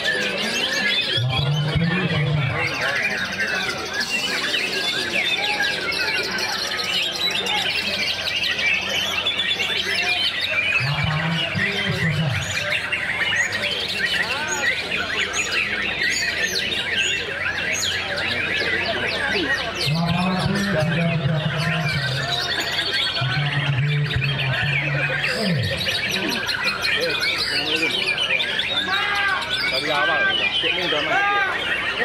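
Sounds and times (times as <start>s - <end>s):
songbirds singing and chirping: 0.0s - 32.0s
low voice: 10.7s - 12.7s.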